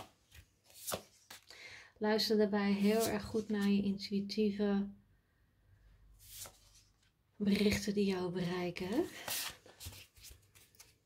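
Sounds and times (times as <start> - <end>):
cards being shuffled: 0.0 - 1.5, 8.9 - 11.0.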